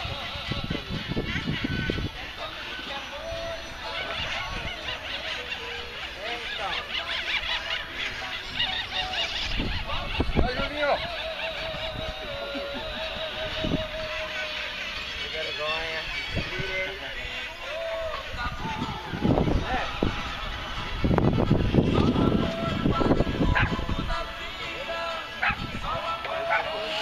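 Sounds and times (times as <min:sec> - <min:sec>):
people talking in background: 0:00.0 - 0:27.0.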